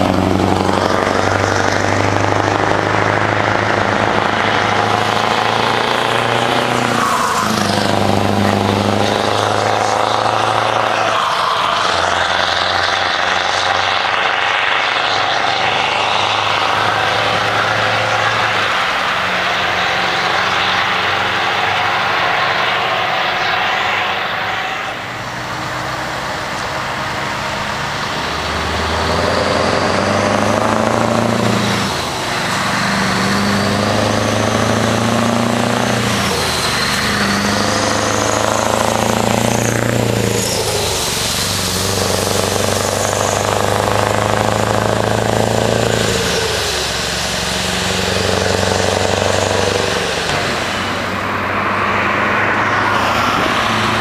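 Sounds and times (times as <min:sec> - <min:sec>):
truck accelerating through gears: 0:00.0 - 0:54.0.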